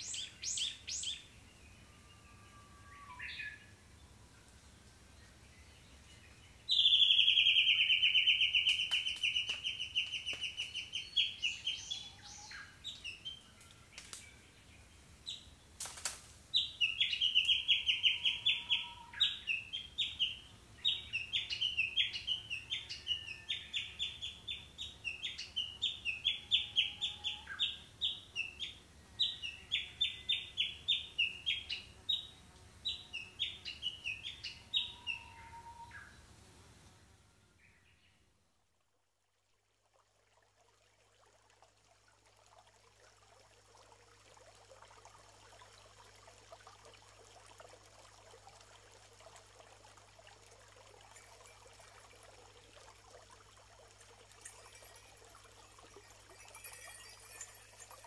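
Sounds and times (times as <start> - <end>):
bird calling in high trills: 16.8 - 19.8, 33.7 - 36.2, 54.3 - 58.0.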